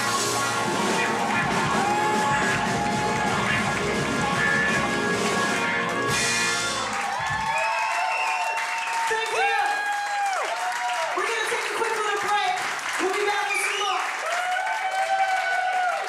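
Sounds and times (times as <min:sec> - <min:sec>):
live soul band: 0:00.0 - 0:07.0.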